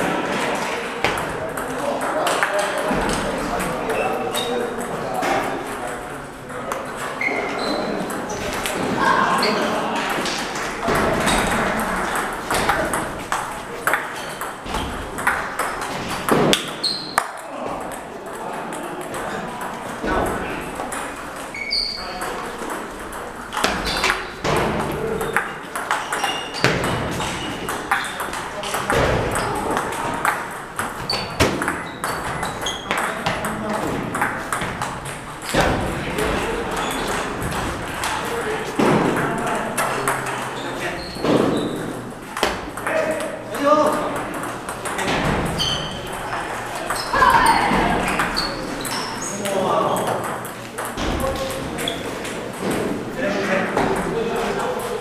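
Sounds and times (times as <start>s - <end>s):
murmur of voices: 0.0s - 55.0s
table tennis balls clicking: 9.4s - 52.8s.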